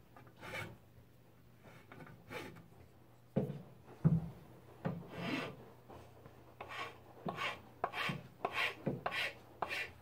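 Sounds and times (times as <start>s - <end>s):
file scraping wood: 0.2s - 0.8s, 1.6s - 2.6s, 5.0s - 5.6s, 6.6s - 10.0s.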